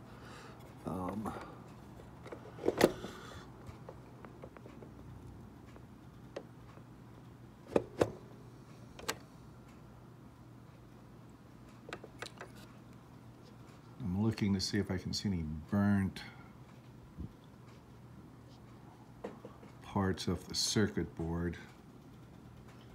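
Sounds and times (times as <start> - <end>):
plastic clicks and light knocks: 11.7 - 12.7.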